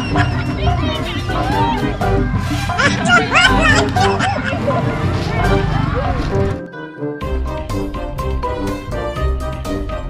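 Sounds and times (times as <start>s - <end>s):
women laughing: 0.0s - 6.2s
music with bass line: 0.0s - 6.6s, 7.2s - 10.0s
young women's excited voices: 0.4s - 2.2s.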